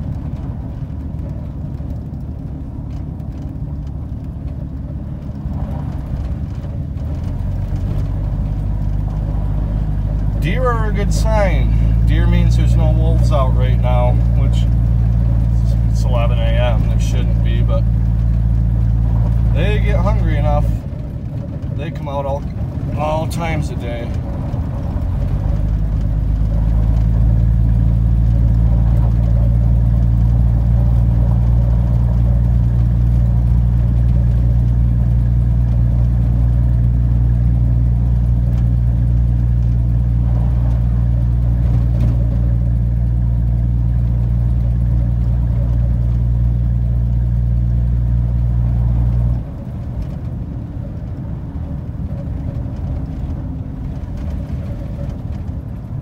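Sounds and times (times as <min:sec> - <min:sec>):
truck engine droning: 0:00.0 - 0:56.0.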